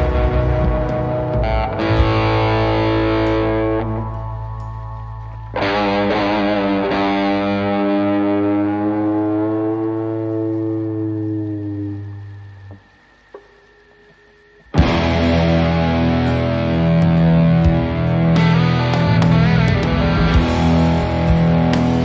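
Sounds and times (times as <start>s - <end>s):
distorted electric guitar chords: 0.0s - 22.0s.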